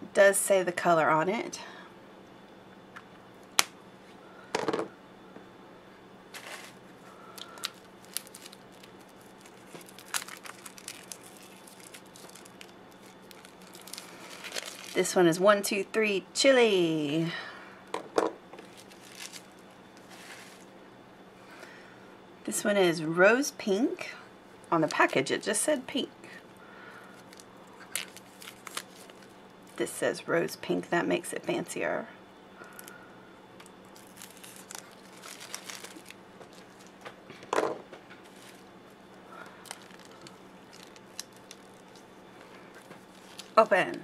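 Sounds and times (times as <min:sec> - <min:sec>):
plastic packaging rustling: 0:06.3 - 0:15.2, 0:18.6 - 0:20.7, 0:27.1 - 0:29.8, 0:33.6 - 0:44.0
plastic wrappers crinkling: 0:06.3 - 0:15.4, 0:18.6 - 0:20.7, 0:24.7 - 0:25.5, 0:27.0 - 0:29.8, 0:32.7 - 0:32.9, 0:33.6 - 0:44.0.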